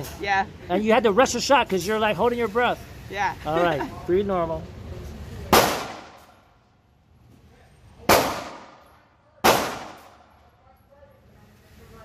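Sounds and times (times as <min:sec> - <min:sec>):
pistol shots echoing indoors: 0:05.5 - 0:06.4, 0:08.1 - 0:10.4.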